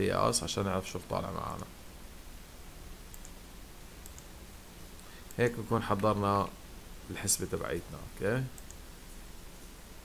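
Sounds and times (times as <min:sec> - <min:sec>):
low background hiss: 0:00.0 - 0:10.0
computer mouse clicks: 0:03.1 - 0:03.4, 0:04.0 - 0:04.3, 0:08.5 - 0:09.2.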